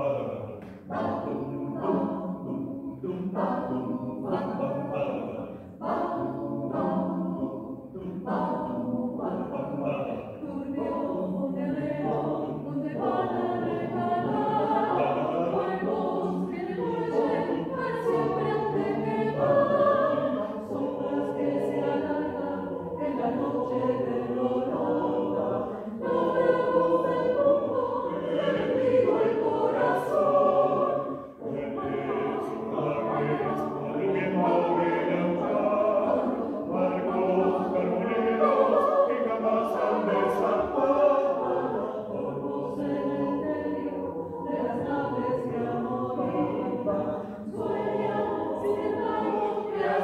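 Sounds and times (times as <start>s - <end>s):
mixed choir singing a cappella: 0.0s - 50.0s.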